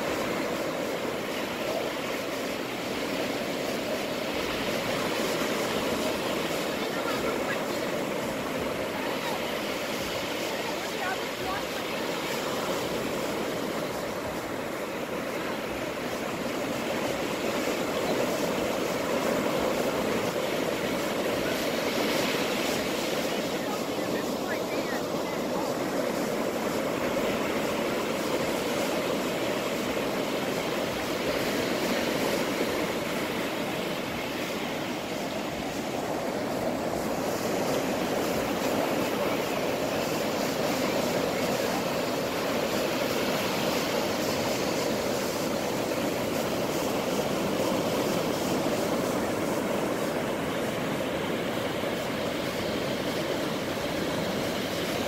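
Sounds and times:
ocean surf breaking: 0.0s - 55.0s.

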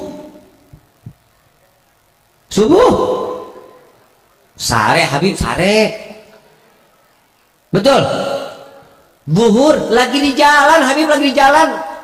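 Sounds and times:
man's amplified voice in hall: 0.0s - 0.6s, 2.5s - 6.7s, 7.7s - 12.0s.

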